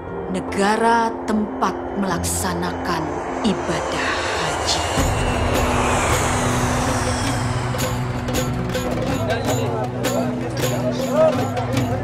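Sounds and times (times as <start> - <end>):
jet engines rushing: 2.0 - 10.0
faint high whine: 2.1 - 9.5.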